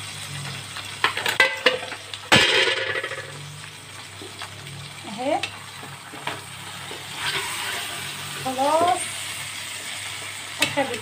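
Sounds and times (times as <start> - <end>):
duck sizzling in fat: 0.0 - 2.4, 3.2 - 11.0.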